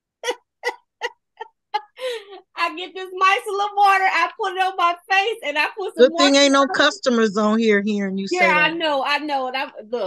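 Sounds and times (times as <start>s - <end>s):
woman laughing: 0.1s - 2.5s, 5.8s - 7.0s.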